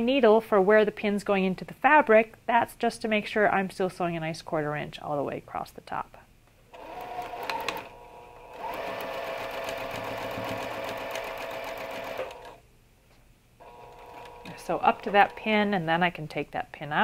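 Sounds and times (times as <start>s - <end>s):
sewing machine stitching: 6.7s - 12.6s, 13.6s - 15.6s.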